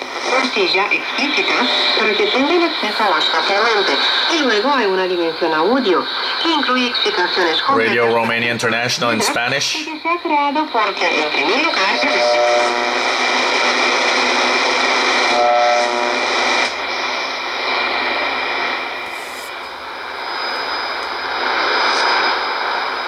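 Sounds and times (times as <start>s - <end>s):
radio static and hiss: 0.0s - 23.0s.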